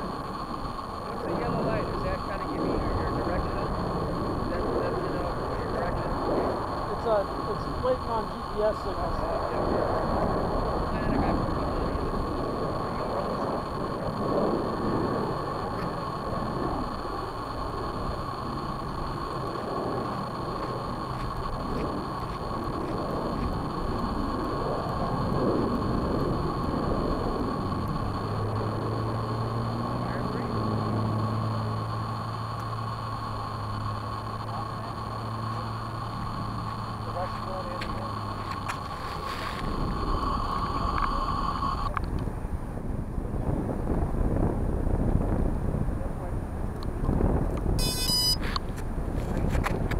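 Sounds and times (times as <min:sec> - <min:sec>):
high-pitched electronic whine: 0:00.0 - 0:49.9
low steady hum: 0:00.0 - 0:49.9
wind buffeting microphone: 0:00.0 - 0:49.9.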